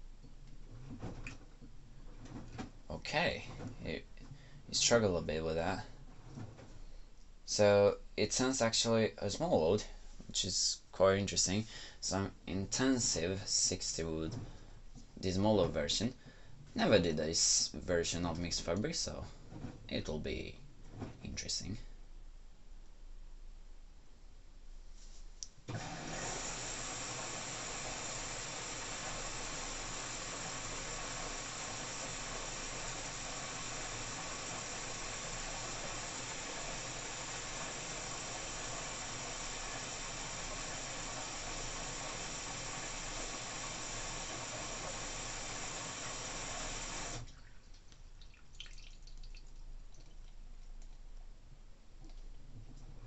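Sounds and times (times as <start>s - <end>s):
water rushing into washing machine: 25.7s - 47.6s.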